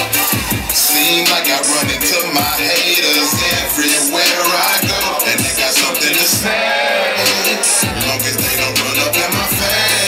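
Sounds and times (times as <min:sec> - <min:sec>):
rapping over hip hop beat: 0:00.0 - 0:10.0
deep bass kicks: 0:07.8 - 0:10.0.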